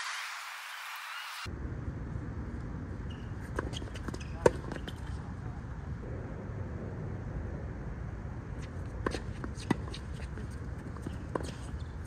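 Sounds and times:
racket hitting tennis ball: 8.6 - 12.0
shoes scuffing on hard court: 8.6 - 12.0.

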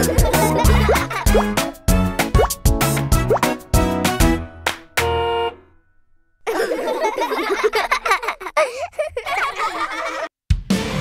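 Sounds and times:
bouncy cartoon music: 0.0 - 5.5.

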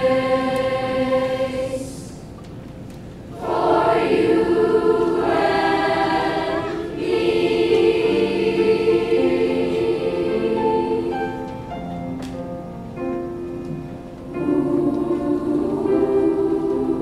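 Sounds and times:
children's choir singing: 0.0 - 2.3, 3.2 - 11.8, 14.2 - 17.0.

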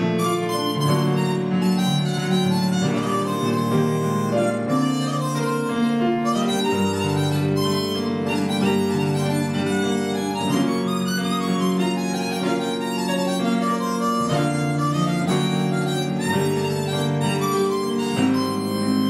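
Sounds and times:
grand piano accompaniment: 0.0 - 19.0
harmonica melody: 0.0 - 19.0.

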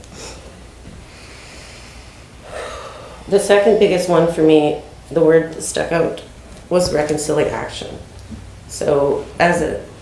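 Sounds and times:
woman drawing a breath: 1.1 - 3.2
woman sniffling: 2.5 - 3.2.

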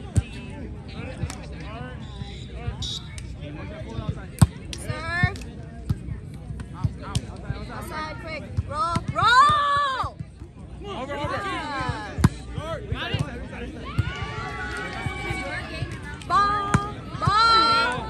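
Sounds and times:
people calling out: 13.8 - 18.0.

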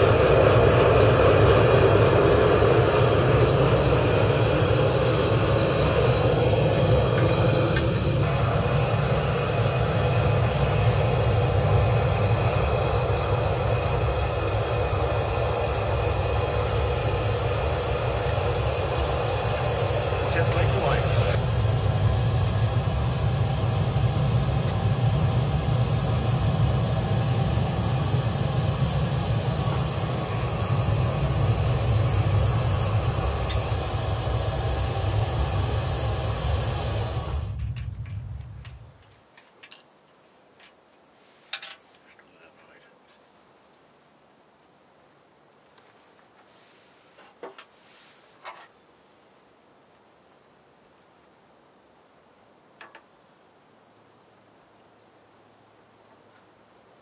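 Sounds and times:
gas burner rushing: 0.0 - 39.0.

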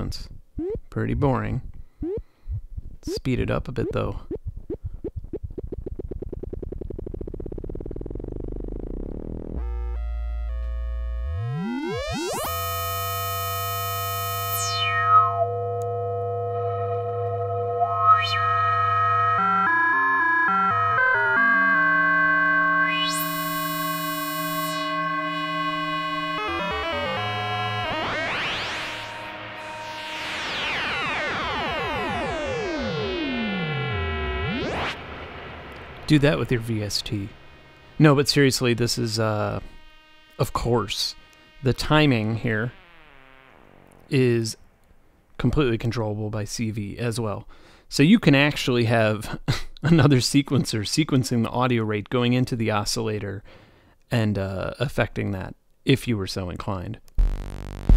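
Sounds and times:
modular synthesizer buzzy tones: 0.5 - 1.0, 2.0 - 2.3, 3.0 - 45.4, 57.1 - 57.9.

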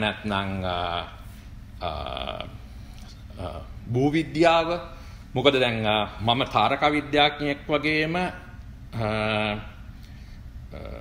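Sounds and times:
man speaking: 0.0 - 2.7, 3.3 - 9.8
man saying drawn-out vowel: 1.8 - 2.6.

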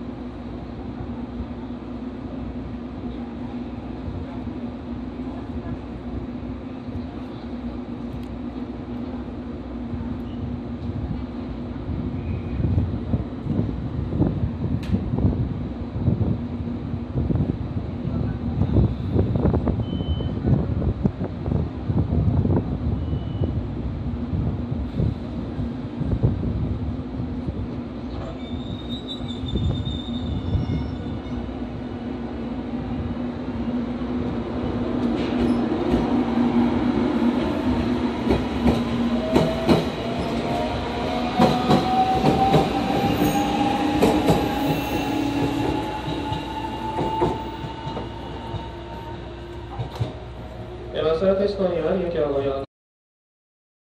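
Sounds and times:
train rumble: 0.0 - 52.4.

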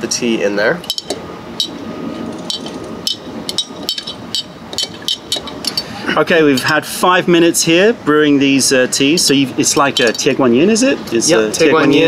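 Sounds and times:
spoon clinking against glass jar: 2.4 - 5.9.

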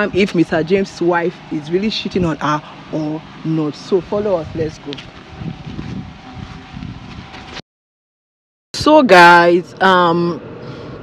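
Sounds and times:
wind buffeting microphone: 0.0 - 7.6.

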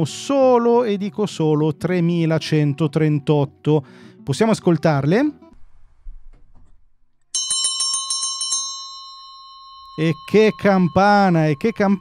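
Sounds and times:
bell struck rapidly: 7.4 - 12.0.

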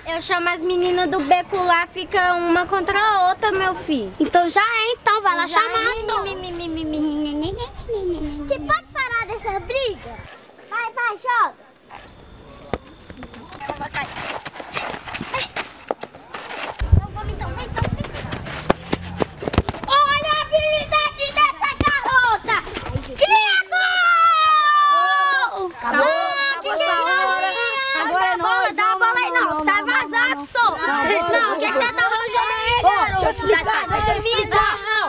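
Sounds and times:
ball being kicked: 17.8 - 20.1, 21.7 - 22.1
children shouting and screaming: 19.8 - 35.0.

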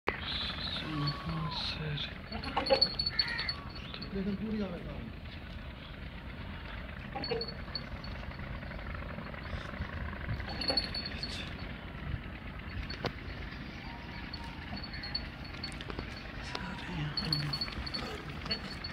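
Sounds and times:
distant men talking: 0.1 - 18.9.

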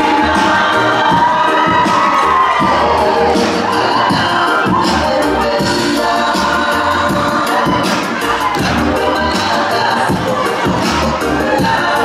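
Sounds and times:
crowd cheering and shouting: 0.0 - 12.0
dance music playing: 0.0 - 12.0.

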